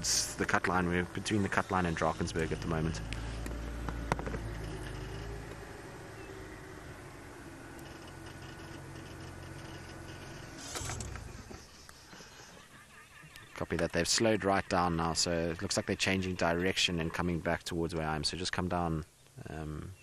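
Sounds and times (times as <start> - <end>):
vehicle engine running: 0.0 - 12.5.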